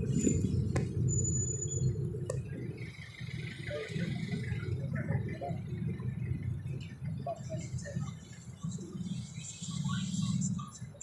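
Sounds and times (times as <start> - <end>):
faint scattered higher sounds: 0.0 - 11.0
vehicle rumble in traffic: 0.0 - 11.0.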